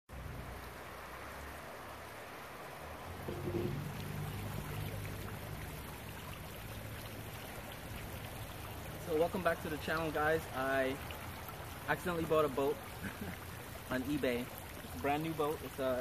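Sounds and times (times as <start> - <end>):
outdoor background hiss: 0.1 - 16.0
low hum: 3.2 - 6.3.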